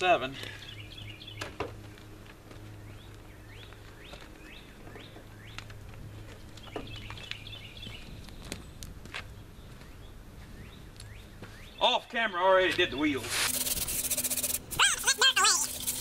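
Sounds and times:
songbirds chirping: 0.0 - 13.2.

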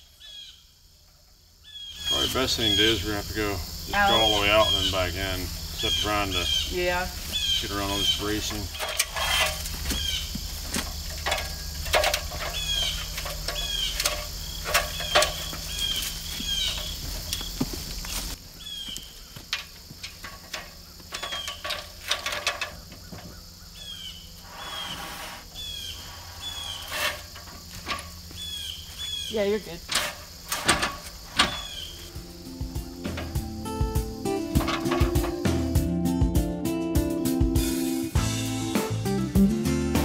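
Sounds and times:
low steady hum: 0.0 - 36.0
metal ladders clanking: 7.3 - 18.3, 19.4 - 23.5, 26.5 - 36.0.

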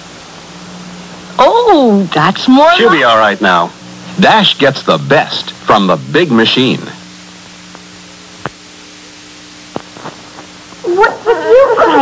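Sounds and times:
low tape hum: 0.0 - 12.0
baby crying: 10.9 - 12.0.

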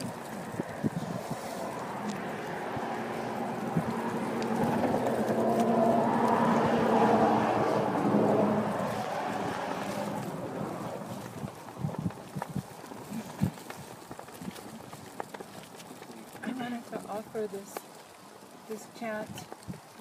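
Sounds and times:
wind on microphone: 0.0 - 15.8, 19.2 - 20.0.

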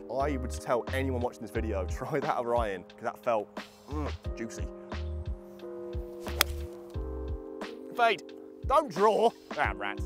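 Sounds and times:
music with chords and low beat: 0.0 - 10.0
golf club striking ball: 6.2 - 7.0.

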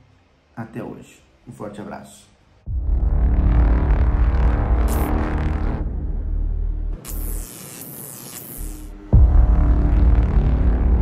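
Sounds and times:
dark droning music: 2.6 - 7.0, 8.7 - 11.0
deep bass hit: 2.7 - 7.0, 8.9 - 11.0
flickering static hiss: 7.0 - 8.9.

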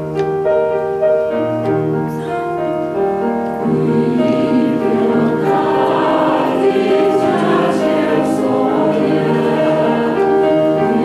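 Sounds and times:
choir singing a hymn: 3.5 - 11.0.

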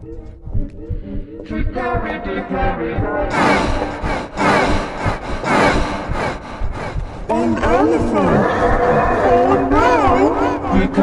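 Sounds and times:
rasping distorted noise: 1.5 - 11.0
warbling voice-like sound: 3.2 - 11.0.

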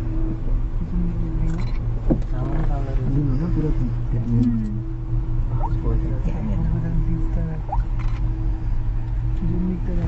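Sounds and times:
vehicle engine and tyres drone: 0.0 - 10.0.

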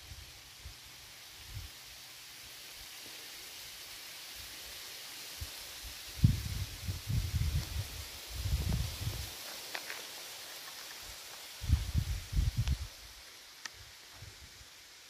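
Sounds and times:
steady outdoor hiss: 0.0 - 15.0.

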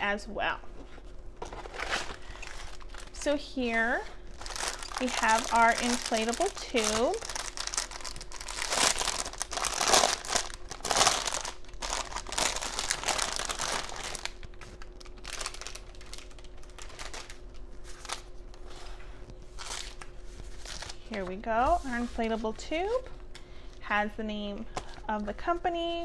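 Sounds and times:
plastic bag crinkling: 1.4 - 21.3.

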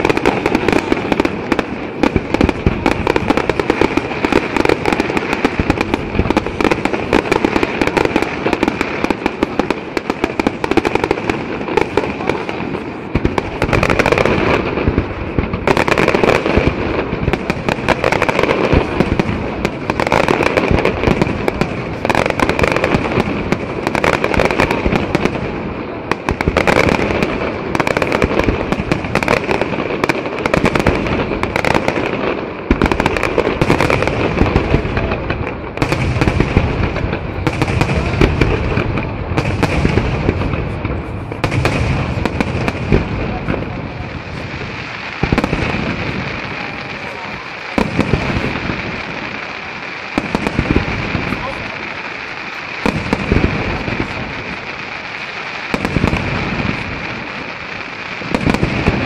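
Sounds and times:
fireworks crackling: 0.0 - 59.0.

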